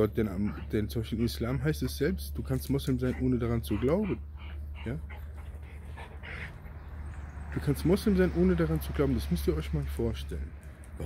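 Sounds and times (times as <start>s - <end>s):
soft breathy panting: 3.1s - 7.0s.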